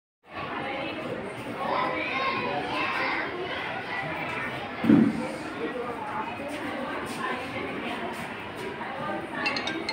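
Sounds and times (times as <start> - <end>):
children chattering: 0.4 - 9.9.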